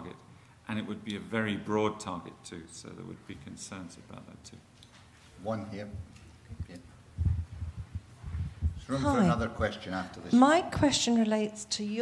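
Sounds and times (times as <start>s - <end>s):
microphone handling thumps: 6.0s - 9.5s.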